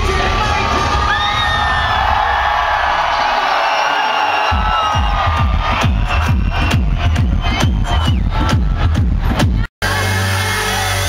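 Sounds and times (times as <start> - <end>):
crowd cheering and screaming: 0.1 - 11.0
electronic dance music: 3.9 - 11.0.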